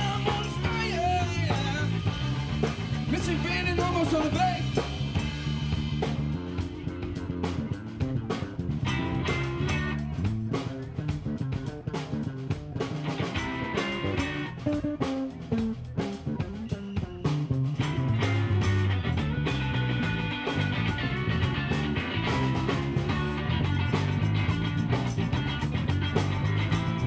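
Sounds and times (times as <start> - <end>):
bass guitar: 0.0 - 27.0
electric guitar: 0.0 - 27.0.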